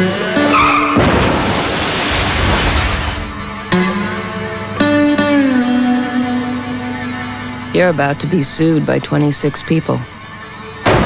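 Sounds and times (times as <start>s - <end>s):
tire squeal: 0.3s - 3.5s
car crash crunching: 0.4s - 5.6s
music with sustained notes: 3.0s - 11.0s.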